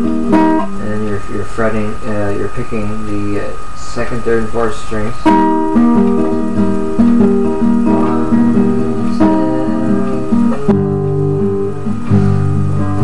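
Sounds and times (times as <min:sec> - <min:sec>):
classical guitar fingerpicking: 0:00.0 - 0:02.7, 0:05.2 - 0:13.0.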